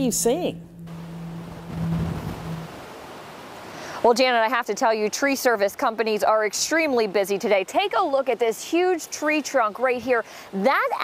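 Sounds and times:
low hum: 0.0s - 3.6s.

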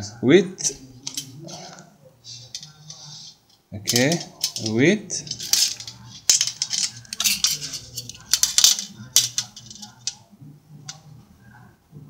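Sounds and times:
metal rattling and scraping: 0.6s - 10.2s.

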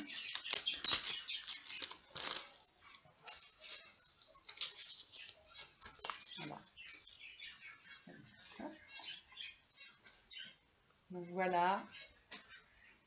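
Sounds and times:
plastic packet crinkling: 0.0s - 7.4s
budgerigars chirping: 6.3s - 10.6s.

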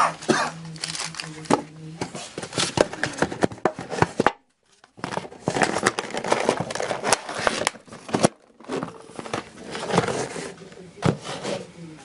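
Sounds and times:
plastic bag crinkling: 0.1s - 3.2s, 4.7s - 10.6s.

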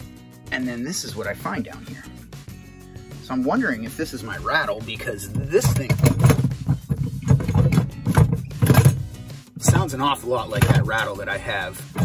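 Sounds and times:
metal jack rattling: 5.2s - 9.9s.

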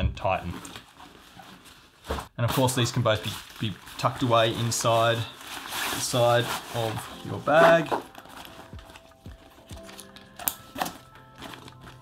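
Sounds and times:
backpack fabric rustling: 3.3s - 12.0s
background music: 4.1s - 12.0s.

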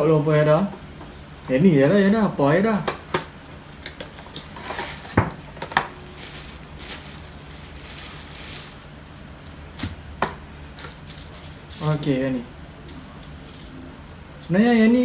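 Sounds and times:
plastic bag rustling: 4.5s - 10.0s.

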